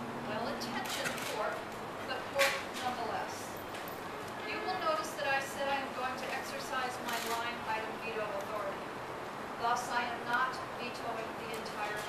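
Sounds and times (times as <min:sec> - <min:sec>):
woman speaking: 0:00.3 - 0:03.6, 0:04.5 - 0:08.8, 0:09.6 - 0:12.0.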